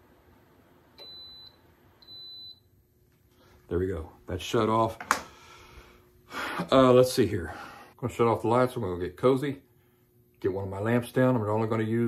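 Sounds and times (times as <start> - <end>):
space heater beeps: 1.0 - 2.8.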